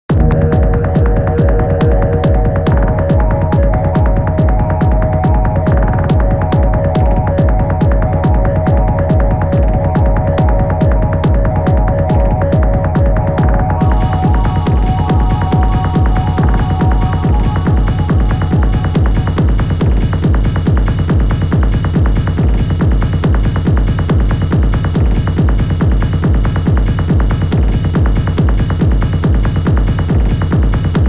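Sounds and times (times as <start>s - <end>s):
electronic music with fast beat: 0.0s - 31.0s.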